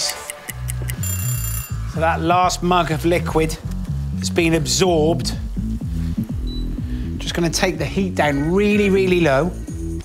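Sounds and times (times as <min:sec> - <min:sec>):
stopwatch ticking clicks: 0:00.0 - 0:01.1
background music with bass line: 0:00.0 - 0:10.0.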